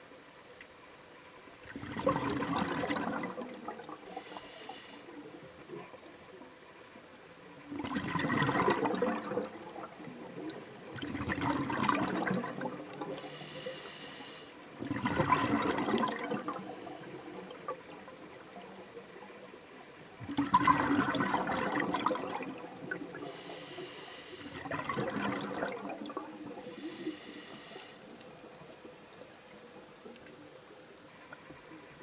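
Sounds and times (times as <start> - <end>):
bubbling exhaled air underwater: 1.6 - 6.2, 7.6 - 13.9, 14.6 - 29.1
regulator inhalation hiss: 4.0 - 5.1, 13.1 - 14.6, 23.2 - 24.6, 26.6 - 28.1.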